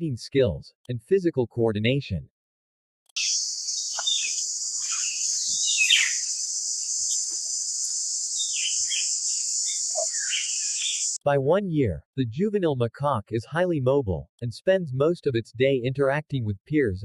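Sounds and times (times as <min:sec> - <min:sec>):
bird chirps and calls: 0:03.2 - 0:11.2
high-pitched insect drone: 0:03.2 - 0:11.2.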